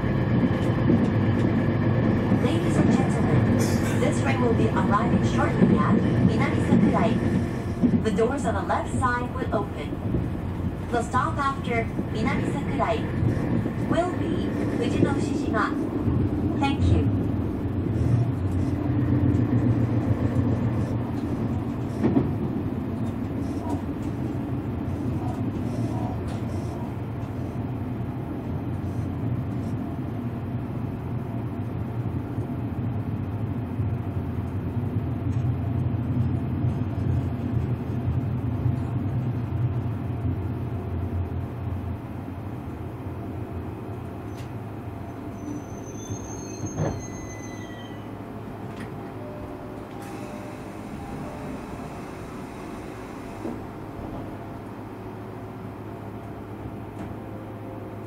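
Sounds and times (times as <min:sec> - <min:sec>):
train cabin rumble: 0:00.0 - 0:58.0
faint high whine: 0:49.2 - 0:53.9.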